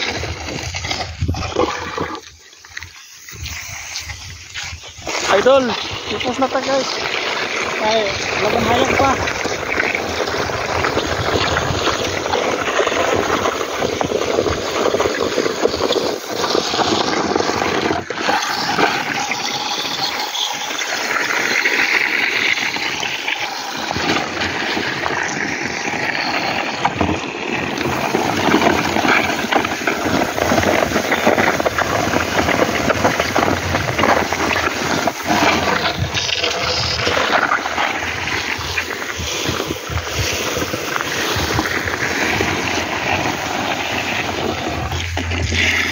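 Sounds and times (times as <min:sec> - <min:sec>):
grain scraping over concrete: 0:00.0 - 0:45.9.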